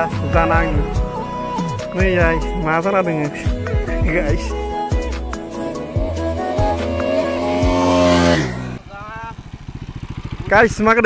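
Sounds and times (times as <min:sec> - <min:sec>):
background music with a beat: 0:00.0 - 0:08.4
engine pulsing slowly: 0:00.0 - 0:11.0
motorcycle passing by: 0:04.8 - 0:11.0.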